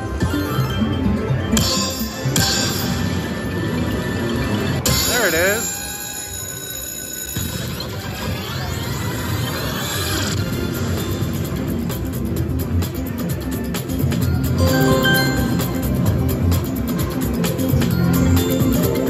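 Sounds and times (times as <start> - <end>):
slot machine electronic sounds: 0.0 - 5.6, 14.4 - 16.9
upbeat background music: 11.2 - 19.0
short warbling tone: 14.6 - 16.0
sweeping electronic tones: 14.6 - 16.0.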